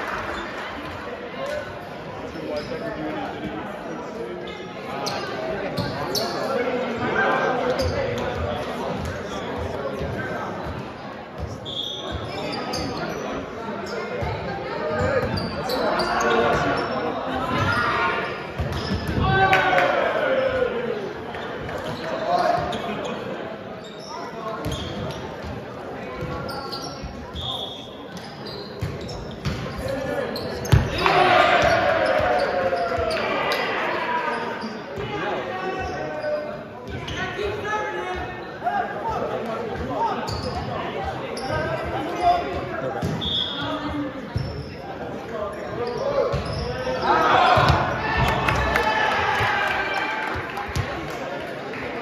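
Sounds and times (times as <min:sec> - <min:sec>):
players shouting and chatting: 0:00.0 - 0:52.0.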